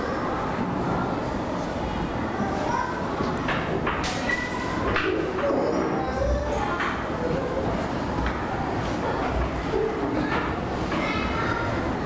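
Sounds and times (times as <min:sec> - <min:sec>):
low dove-like cooing: 0:05.3 - 0:08.1.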